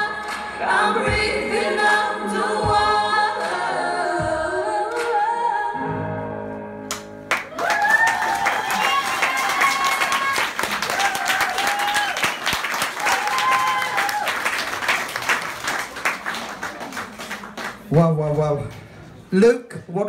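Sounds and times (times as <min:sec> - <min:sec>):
woman singing a slow ballad: 0:00.0 - 0:06.1
audience applause: 0:07.3 - 0:17.9.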